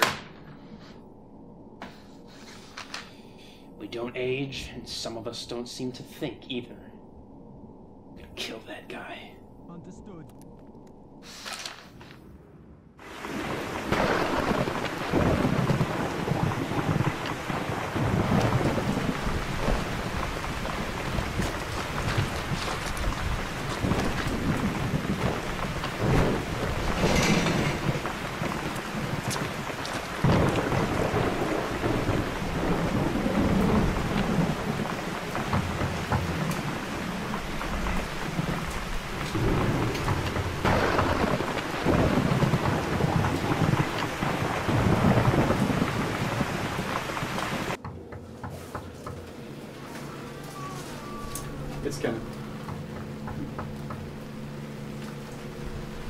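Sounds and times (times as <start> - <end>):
thunder rolling: 12.4 - 48.1
heavy rain: 13.0 - 47.8, 49.2 - 56.0.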